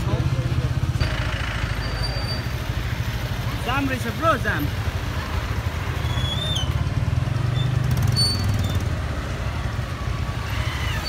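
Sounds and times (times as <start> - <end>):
traffic engines rumbling: 0.0 - 11.0.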